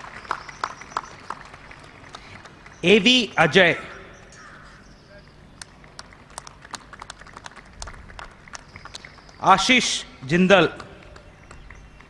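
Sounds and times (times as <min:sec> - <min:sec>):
audience clapping sparsely: 0:00.0 - 0:03.5, 0:05.6 - 0:12.0.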